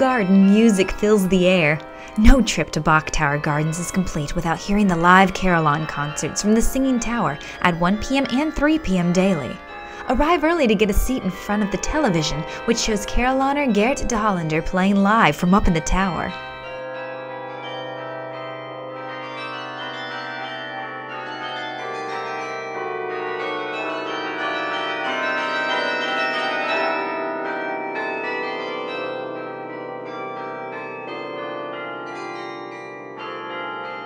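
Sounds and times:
carillon bells playing a tune: 0:00.0 - 0:34.0.

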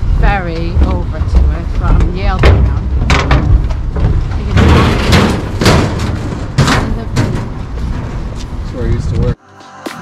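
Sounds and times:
sharp wind thumps: 0:00.0 - 0:09.4
wind rumble on microphone: 0:00.0 - 0:09.4.

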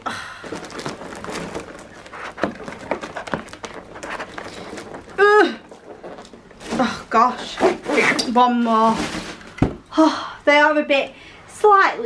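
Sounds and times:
cardboard scraping and rustling: 0:00.4 - 0:09.8.

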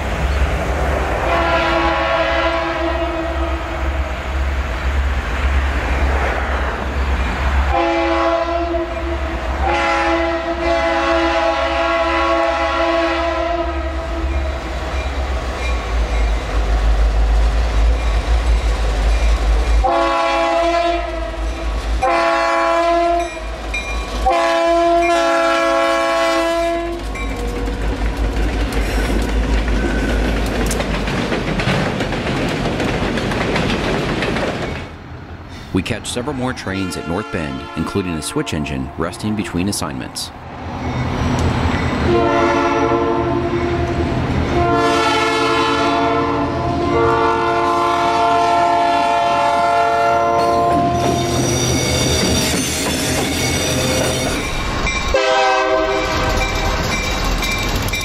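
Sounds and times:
rail cars clattering past: 0:00.0 - 0:58.0
locomotive air horn blasts: 0:01.2 - 0:03.8, 0:07.7 - 0:14.2, 0:19.8 - 0:21.4, 0:22.0 - 0:23.4, 0:24.2 - 0:27.0, 0:36.8 - 0:39.3, 0:42.1 - 0:51.3, 0:55.1 - 0:56.4.

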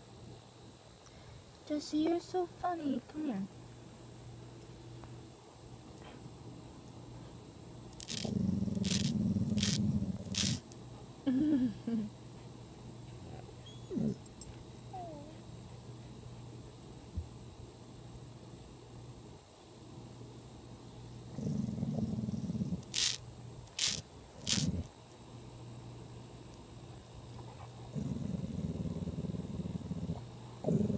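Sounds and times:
cicada buzzing: 0:07.9 - 0:10.7, 0:22.8 - 0:24.9
dog growling low: 0:08.0 - 0:10.6, 0:13.9 - 0:14.3, 0:21.3 - 0:23.2, 0:23.8 - 0:24.9, 0:27.8 - 0:30.9
dog sniffing: 0:08.0 - 0:10.6.

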